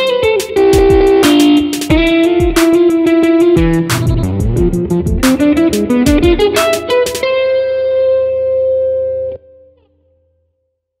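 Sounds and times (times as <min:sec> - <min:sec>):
electric guitar ringing chord: 0:00.0 - 0:09.9
low bass tone: 0:03.6 - 0:05.4.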